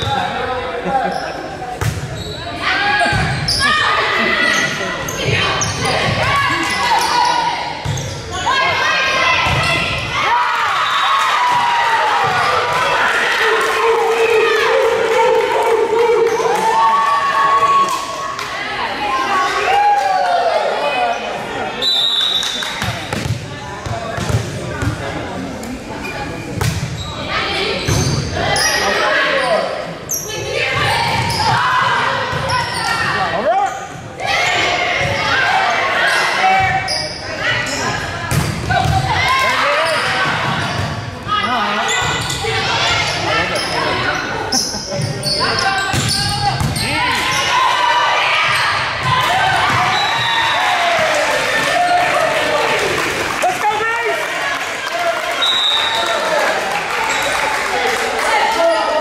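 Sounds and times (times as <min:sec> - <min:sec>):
voices calling and cheering: 0:00.0 - 0:59.0.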